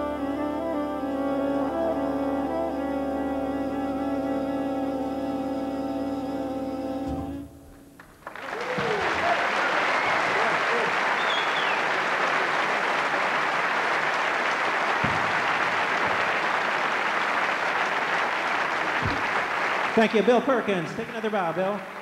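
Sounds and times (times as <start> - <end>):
jazz big band chord: 0.0 - 8.0
audience applauding: 8.0 - 22.0
whoops and whistles: 8.4 - 10.6, 11.2 - 11.8.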